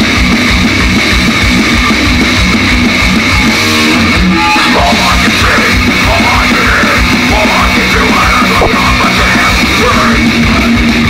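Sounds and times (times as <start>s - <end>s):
distorted electric guitar: 0.0s - 11.0s
drum kit: 0.0s - 11.0s.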